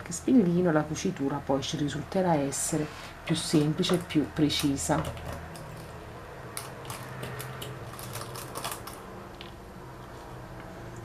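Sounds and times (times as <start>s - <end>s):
low steady hum: 0.0s - 11.0s
sewing pins clicking: 3.9s - 9.5s.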